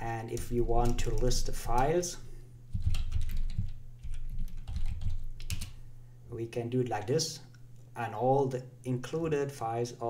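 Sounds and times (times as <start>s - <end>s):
computer keyboard typing: 0.3s - 2.0s, 2.7s - 5.8s.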